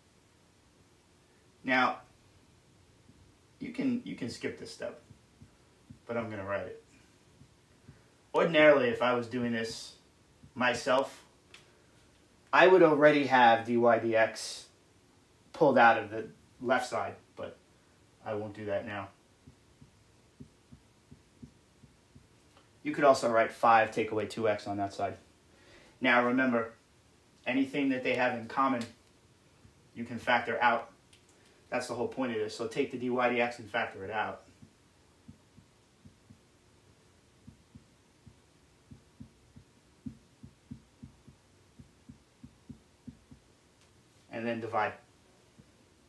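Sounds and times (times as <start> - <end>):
marker knocking on whiteboard: 19.4 - 22.3, 37.5 - 43.5.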